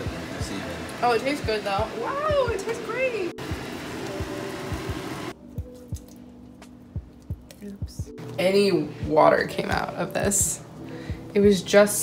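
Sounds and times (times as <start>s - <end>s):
background music with bass beat: 4.1s - 8.2s.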